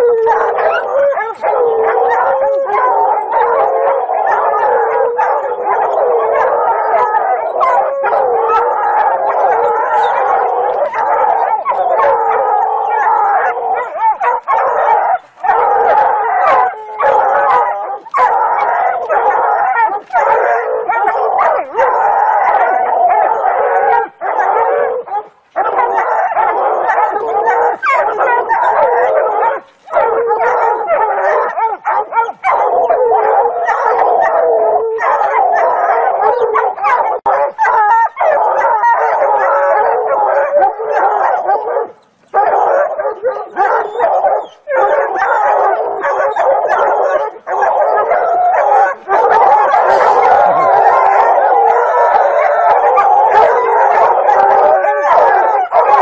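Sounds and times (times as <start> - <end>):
hounds baying and barking: 0.0 - 56.0.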